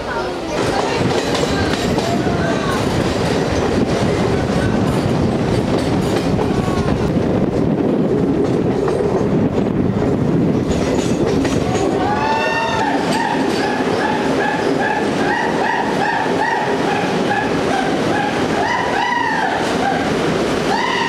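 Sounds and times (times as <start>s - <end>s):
train wheels rumbling and clattering: 0.0s - 21.0s.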